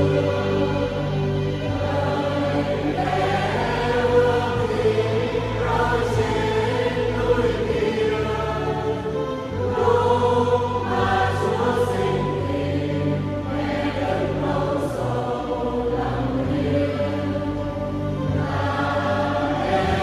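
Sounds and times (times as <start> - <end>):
choir singing a hymn unaccompanied: 0.0 - 20.0.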